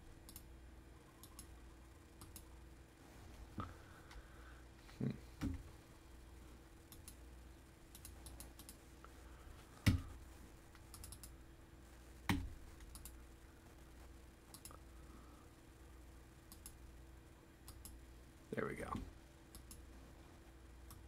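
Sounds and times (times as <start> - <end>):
mouse clicks: 2.2 - 2.4, 12.3 - 13.2, 16.5 - 16.8, 17.6 - 18.0.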